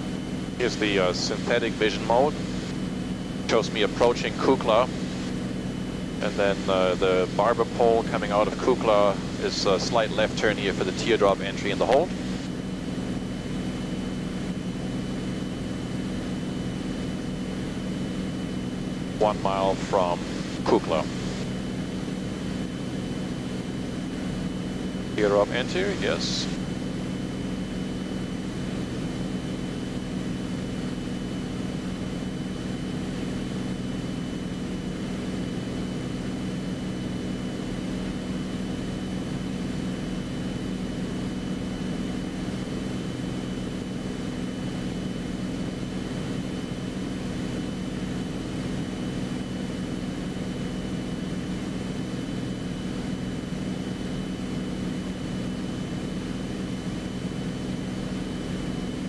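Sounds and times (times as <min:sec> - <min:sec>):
piston aircraft engine droning: 0:00.0 - 0:59.0.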